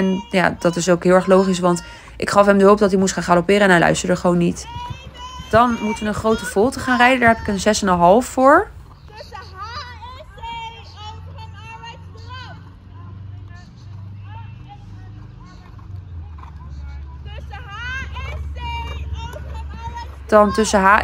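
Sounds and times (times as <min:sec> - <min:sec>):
faint voices talking: 0:00.0 - 0:21.0.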